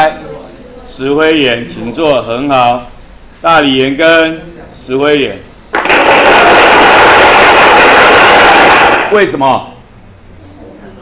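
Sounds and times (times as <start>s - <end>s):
students applauding: 5.7s - 9.2s.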